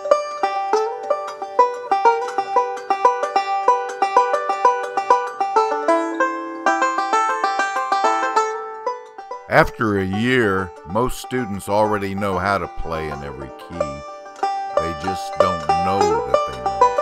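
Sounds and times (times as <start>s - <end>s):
banjo picking: 0.0s - 17.0s.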